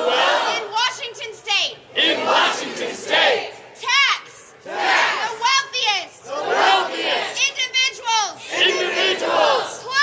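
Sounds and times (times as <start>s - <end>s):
crowd of protesters chanting: 0.0s - 1.2s, 1.8s - 4.0s, 4.6s - 10.0s
woman shouting a chant: 0.4s - 1.8s, 3.8s - 6.3s, 7.2s - 8.6s, 9.4s - 10.0s.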